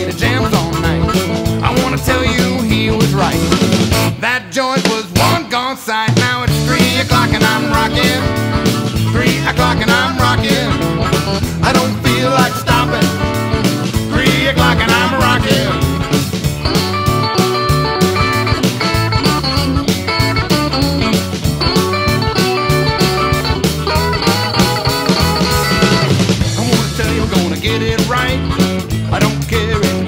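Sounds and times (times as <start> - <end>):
electric guitar lead with bending notes: 0.0 - 4.4, 6.5 - 30.0
bass guitar: 0.0 - 5.6, 6.2 - 30.0
steady drum beat: 0.0 - 30.0.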